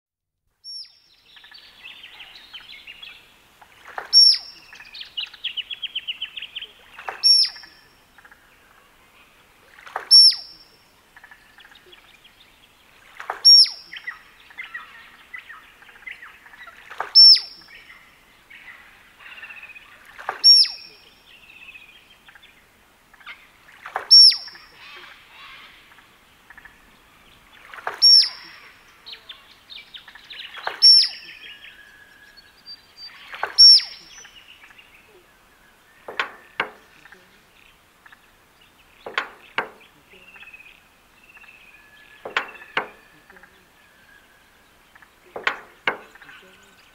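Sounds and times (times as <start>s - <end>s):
duck whistle: 10.1s - 10.4s, 24.1s - 24.5s.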